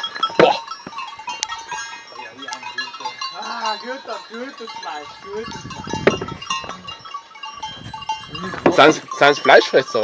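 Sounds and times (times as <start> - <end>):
bell clinking: 0.0 - 10.0.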